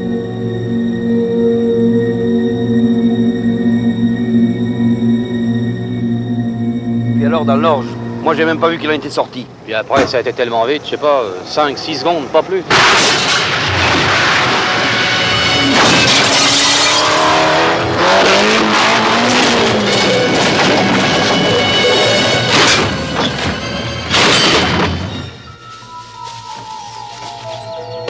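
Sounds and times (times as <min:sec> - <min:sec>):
film score music: 0:00.0 - 0:28.0
sharp impacts: 0:12.6 - 0:25.5
glass shattering: 0:12.7 - 0:17.4, 0:19.3 - 0:25.6
metal crashing: 0:12.7 - 0:17.5, 0:18.6 - 0:25.6.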